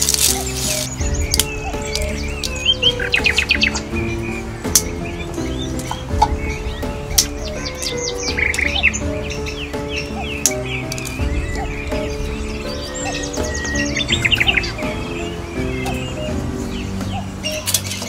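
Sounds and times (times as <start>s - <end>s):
birds chirping: 0.0s - 18.0s
soft background music: 0.0s - 18.0s
sharp clicks: 4.6s - 6.4s, 10.0s - 11.4s.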